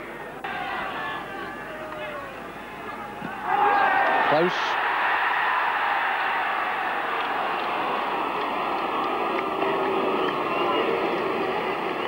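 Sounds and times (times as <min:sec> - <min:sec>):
crowd murmur of chatter: 0:06.6 - 0:12.0.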